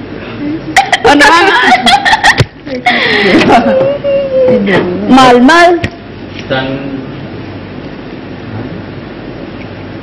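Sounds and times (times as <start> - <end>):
women talking: 0.4 - 5.9
women laughing: 0.7 - 4.6.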